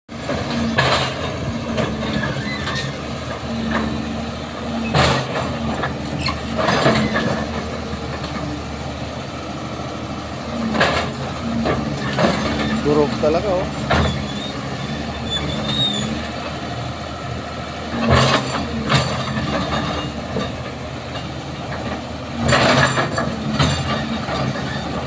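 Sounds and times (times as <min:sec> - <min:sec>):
excavator diesel engine running: 0:00.1 - 0:25.0.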